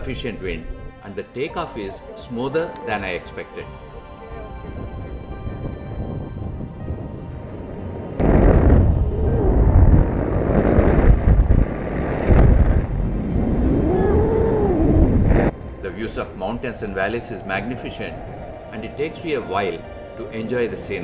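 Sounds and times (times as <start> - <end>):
wind buffeting microphone: 0.0 - 1.1, 3.7 - 21.0
faint background music: 0.0 - 8.2, 15.5 - 21.0.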